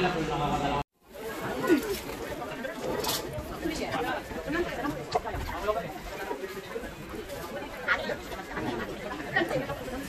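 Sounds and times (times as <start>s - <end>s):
indistinct voices chattering: 0.0s - 10.0s.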